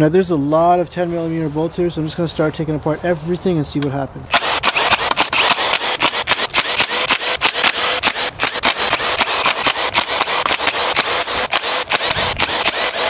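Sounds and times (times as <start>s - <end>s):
impact driver hammering: 4.3s - 13.0s
motor whine: 4.3s - 13.0s.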